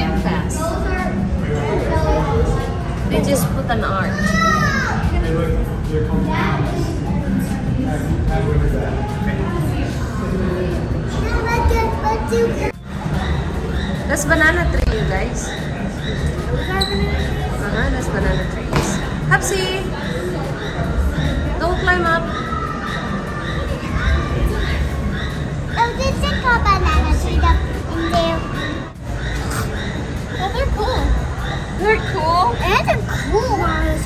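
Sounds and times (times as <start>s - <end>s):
children chattering: 0.0s - 34.0s.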